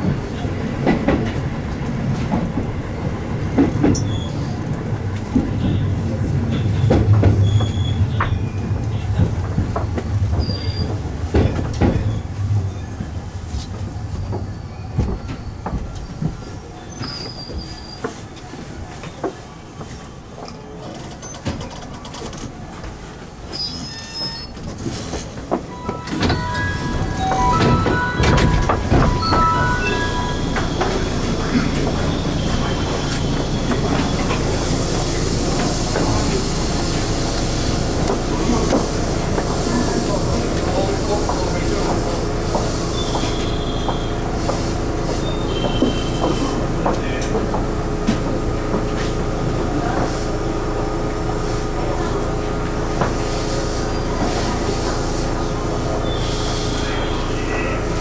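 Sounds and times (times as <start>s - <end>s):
train rumble: 0.0s - 58.0s
wheel squeals: 3.8s - 4.6s, 6.6s - 9.0s, 10.4s - 11.0s, 14.2s - 18.3s, 23.5s - 34.6s, 42.8s - 46.6s, 56.0s - 57.8s.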